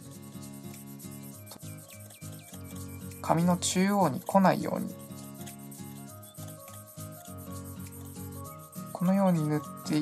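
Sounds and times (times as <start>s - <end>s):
pencil scratching on paper: 0.0s - 10.0s
soft background music: 0.0s - 10.0s.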